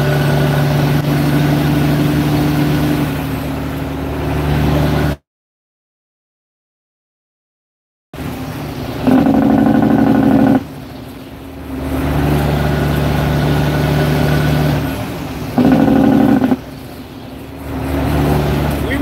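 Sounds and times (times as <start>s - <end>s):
truck engine drone: 0.0s - 5.2s, 8.2s - 19.0s
truck horn blasts: 9.1s - 10.6s.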